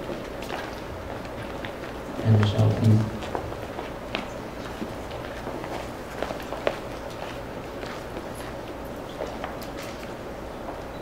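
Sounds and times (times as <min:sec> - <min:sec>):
footsteps: 0:00.0 - 0:10.8
steady low hum: 0:00.0 - 0:11.0.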